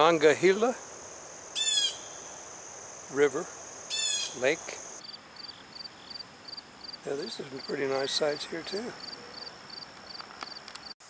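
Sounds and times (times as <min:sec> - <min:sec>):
high insect drone: 0:00.0 - 0:10.9
harsh bird call: 0:01.6 - 0:02.4, 0:03.9 - 0:04.7.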